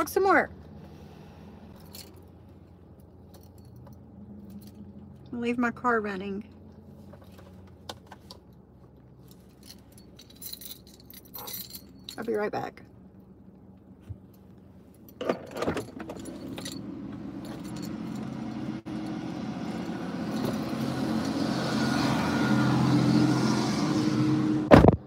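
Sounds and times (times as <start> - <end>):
outside noise: 0.0 - 25.0.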